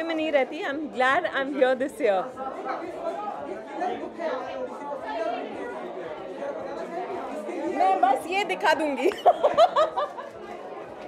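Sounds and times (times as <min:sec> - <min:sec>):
off-mic chatter of voices: 0:00.0 - 0:11.0.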